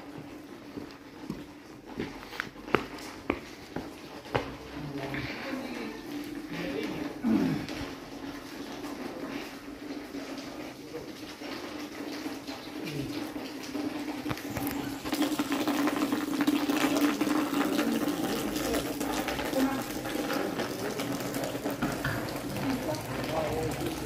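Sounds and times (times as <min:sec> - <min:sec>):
running water rushing: 0:02.8 - 0:24.0.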